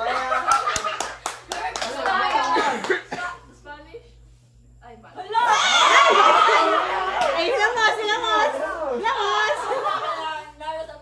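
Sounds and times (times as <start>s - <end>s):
laughter: 0.0s - 1.2s, 5.8s - 7.1s, 9.4s - 10.5s
hands clapping quickly: 0.5s - 3.0s
excited young voices: 5.2s - 10.5s.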